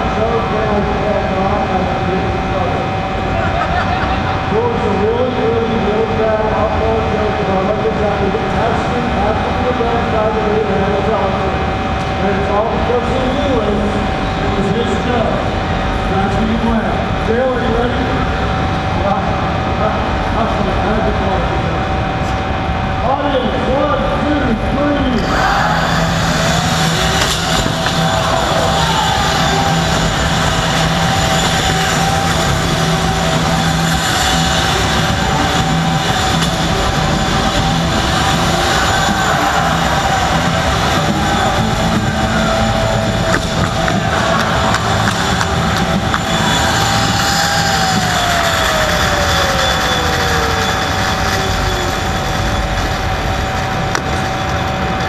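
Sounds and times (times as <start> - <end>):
crowd din: 0.0 - 9.1, 22.2 - 55.0
high electric whine: 0.0 - 55.0
machine noise: 0.0 - 55.0.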